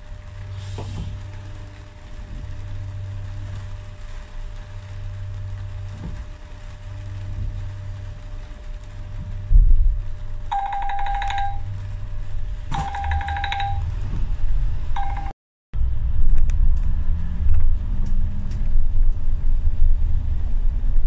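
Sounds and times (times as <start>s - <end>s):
door warning buzzer beeps: 10.5s - 11.7s, 12.7s - 13.9s, 15.0s - 15.3s
bus engine hum: 12.6s - 21.0s.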